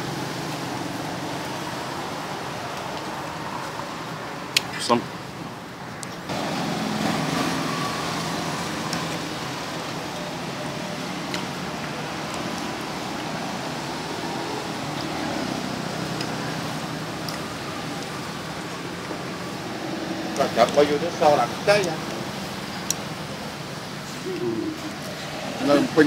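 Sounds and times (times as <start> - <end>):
road traffic with engine hum: 0.0 - 26.0.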